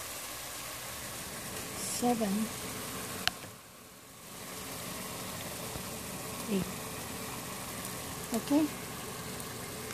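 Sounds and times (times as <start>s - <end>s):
water simmering in pot: 0.0s - 9.9s.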